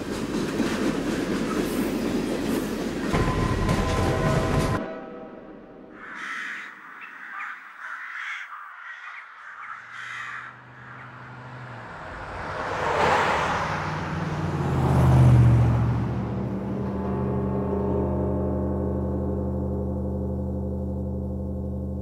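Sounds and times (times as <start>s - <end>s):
short harsh bird calls: 6.0s - 11.3s.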